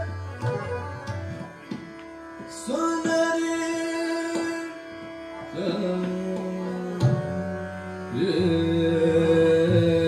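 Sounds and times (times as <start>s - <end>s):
harmonium and tanpura drone: 0.0s - 10.0s.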